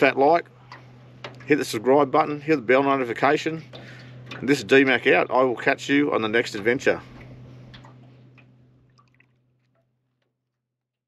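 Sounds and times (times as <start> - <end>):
steady low hum: 0.0 - 10.0
small ticks and drips: 0.6 - 1.5, 7.2 - 10.3.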